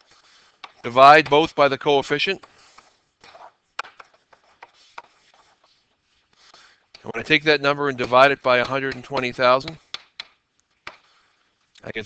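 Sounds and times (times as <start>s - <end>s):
stylus scratching on tablet: 0.0s - 10.0s
stylus tapping on tablet: 2.4s - 5.2s, 8.0s - 11.1s.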